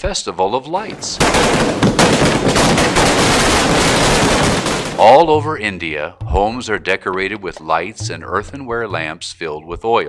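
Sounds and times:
firecrackers popping: 1.2s - 6.9s.

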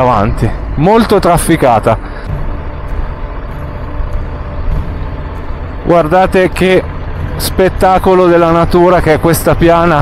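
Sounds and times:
motorcycle engine cruising: 0.0s - 10.0s
road noise: 0.0s - 10.0s.

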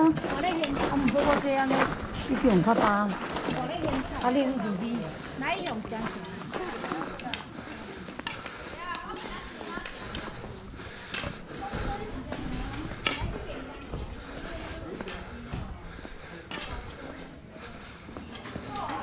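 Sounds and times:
footsteps on stone paving: 0.0s - 19.0s
people talking indistinctly: 0.0s - 19.0s.

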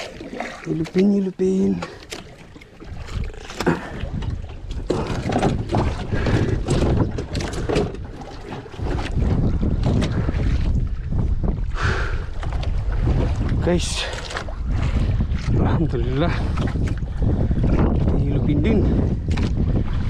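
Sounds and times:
wind buffeting microphone: 0.0s - 20.0s
person speaking: 0.7s - 2.0s.

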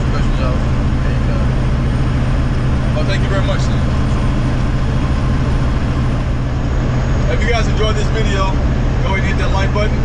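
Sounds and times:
road noise: 0.0s - 10.0s
truck engine hum: 0.0s - 10.0s.

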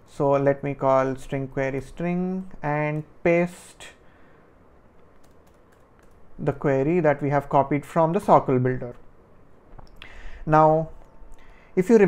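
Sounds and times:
faint keyboard keystrokes: 4.9s - 6.3s.

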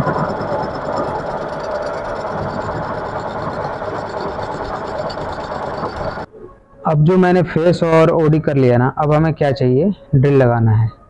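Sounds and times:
metal lathe cutting with whine: 0.0s - 6.3s.

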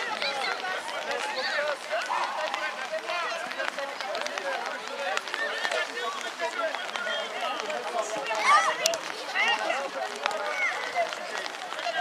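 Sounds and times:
children shouting and calling: 8.1s - 12.0s.

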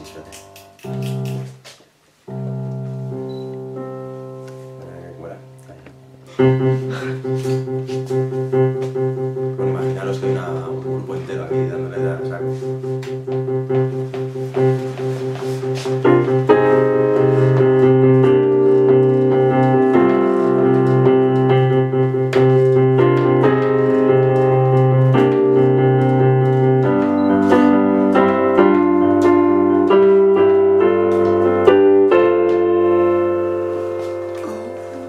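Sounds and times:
keyboard playing sustained chords: 16.1s - 35.0s.

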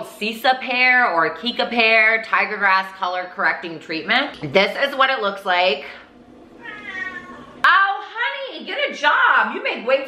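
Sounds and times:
cat meowing: 6.6s - 7.6s.

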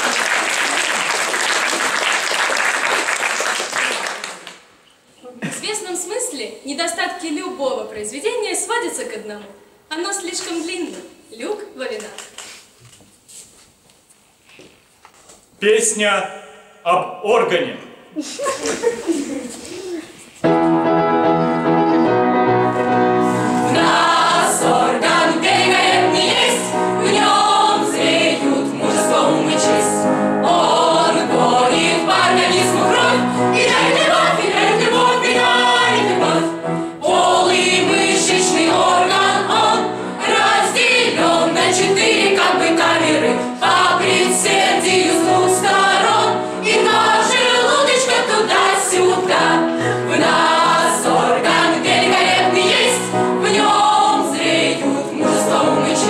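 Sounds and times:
mixed choir singing: 22.8s - 56.0s.

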